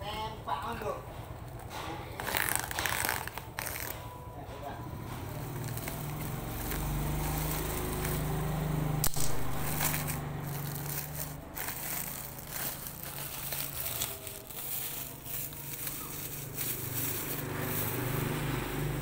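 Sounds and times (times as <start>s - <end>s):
plastic sack crinkling: 2.1s - 4.0s, 5.4s - 18.3s
sharp snap: 9.0s - 9.5s.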